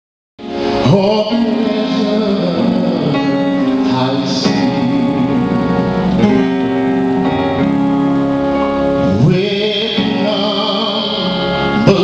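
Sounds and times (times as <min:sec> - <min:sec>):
sustained instrumental accompaniment: 0:00.4 - 0:12.0
man singing a gospel hymn: 0:00.5 - 0:06.2, 0:09.0 - 0:12.0.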